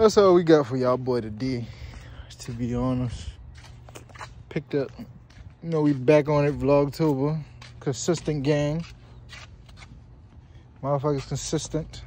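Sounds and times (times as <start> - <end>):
man speaking: 0.0 - 3.4, 4.5 - 8.9, 10.8 - 12.0.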